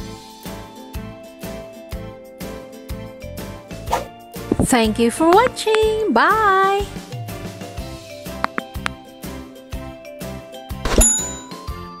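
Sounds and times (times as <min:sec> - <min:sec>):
light background music with beat: 0:00.0 - 0:12.0
bell ding: 0:10.9 - 0:12.0.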